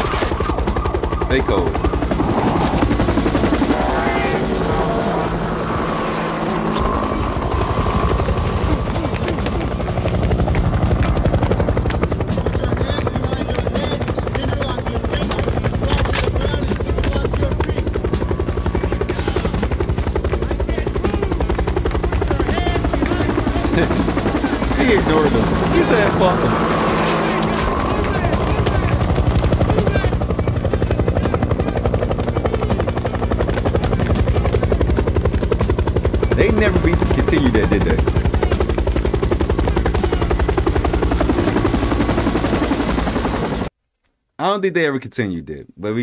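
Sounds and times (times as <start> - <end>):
helicopter rotor chopping: 0.0 - 43.7
music: 0.0 - 43.7
voices: 1.2 - 35.5, 36.2 - 42.3.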